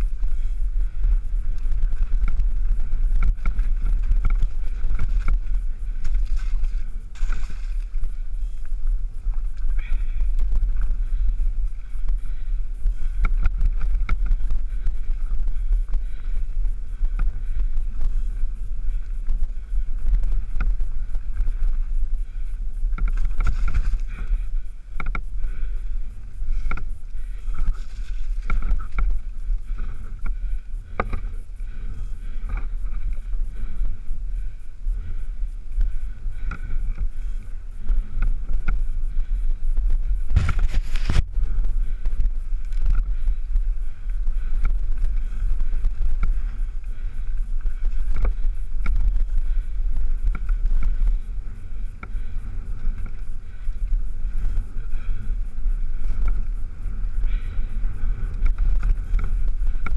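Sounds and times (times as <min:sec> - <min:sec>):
bike knocks and rattles: 0:00.0 - 0:33.9
bike rolling over dirt: 0:00.0 - 0:59.9
wind buffeting microphone: 0:00.0 - 0:59.9.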